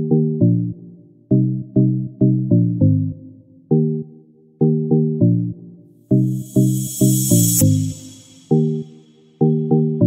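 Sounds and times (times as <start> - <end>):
high hissing swell: 6.3 - 9.0.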